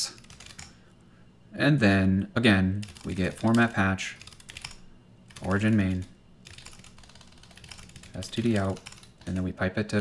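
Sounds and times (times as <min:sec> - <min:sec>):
computer keyboard typing: 0:00.0 - 0:00.8, 0:02.8 - 0:09.5.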